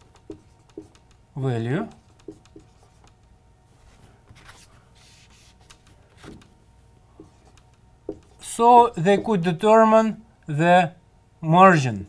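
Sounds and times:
marker scratching on whiteboard: 0.0 - 1.2, 1.9 - 3.3, 4.4 - 6.4, 7.2 - 9.4.

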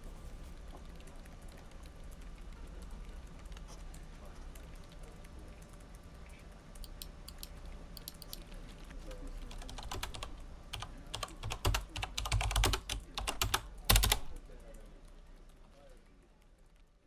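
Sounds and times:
computer keyboard typing: 0.6 - 14.8.

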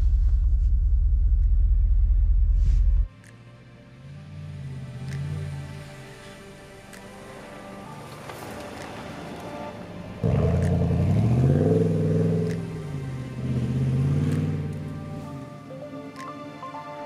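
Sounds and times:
background music: 2.1 - 17.0
pickup truck engine pulling away: 10.2 - 15.5.

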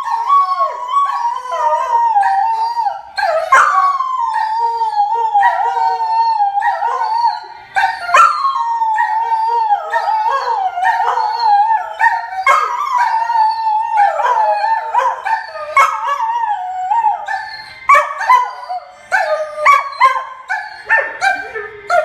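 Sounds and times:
dog howling: 0.0 - 22.0.

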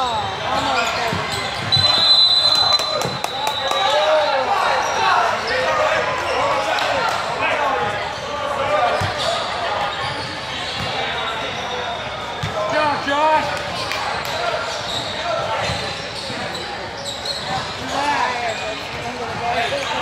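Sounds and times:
voices echoing in a gym: 0.0 - 20.0.

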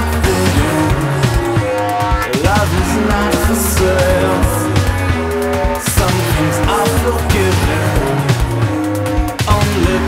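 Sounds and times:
gliding synth notes: 0.0 - 9.3
synth bass line: 0.0 - 9.4
synthesized beat: 0.0 - 10.0.

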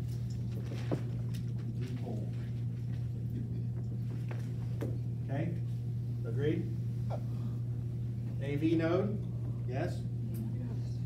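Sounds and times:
steady low room hum: 0.0 - 11.0.

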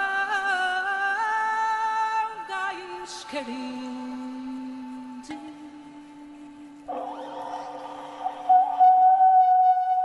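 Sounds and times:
lower sustained note: 6.9 - 10.0.

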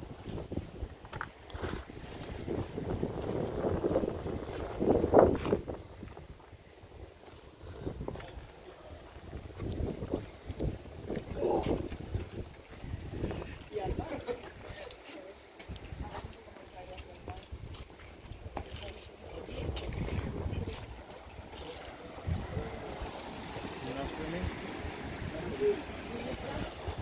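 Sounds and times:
wind buffeting microphone: 0.0 - 14.8, 15.6 - 27.0.

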